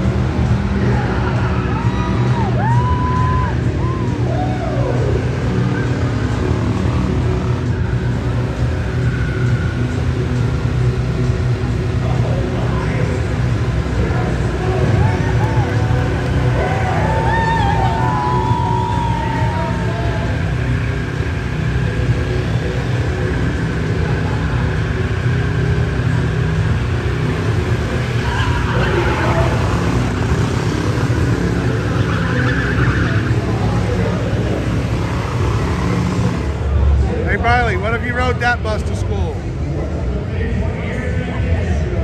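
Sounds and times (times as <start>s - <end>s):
car engine at high revs: 0.0s - 40.3s
tyres squealing on concrete: 28.0s - 36.4s.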